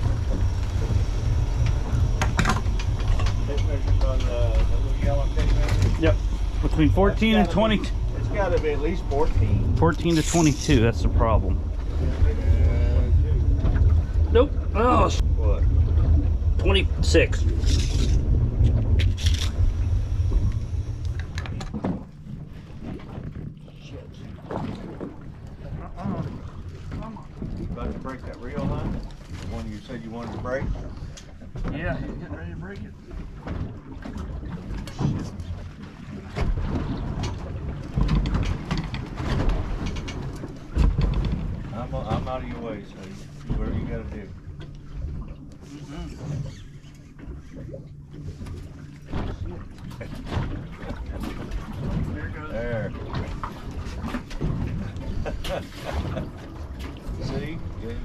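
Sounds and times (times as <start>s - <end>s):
heavy low thumps: 0.0s - 22.3s
steady low hum: 0.0s - 58.0s
people talking indistinctly: 3.4s - 15.8s, 16.6s - 18.2s, 25.6s - 33.1s, 41.7s - 44.4s.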